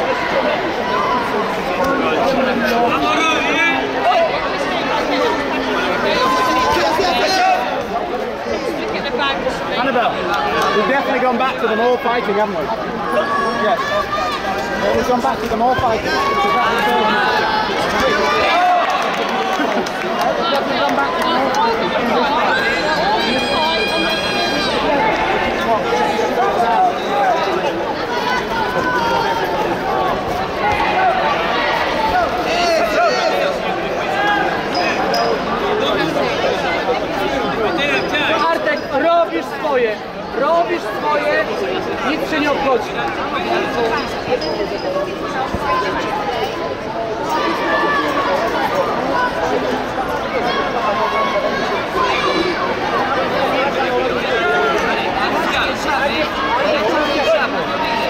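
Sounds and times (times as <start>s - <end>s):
crowd chattering: 0.0s - 58.0s.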